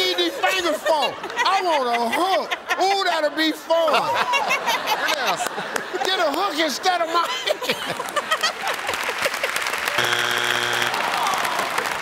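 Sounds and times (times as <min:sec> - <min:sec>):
audience laughing and applauding: 0:03.8 - 0:10.0, 0:10.7 - 0:12.0
electronic game show buzzer: 0:10.0 - 0:11.2.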